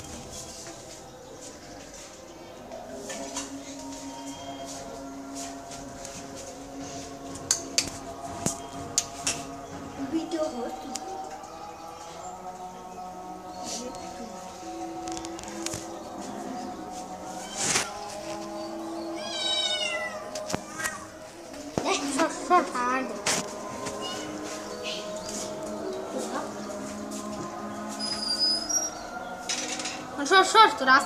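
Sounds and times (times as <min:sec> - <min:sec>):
kitten meowing: 0:19.2 - 0:20.9.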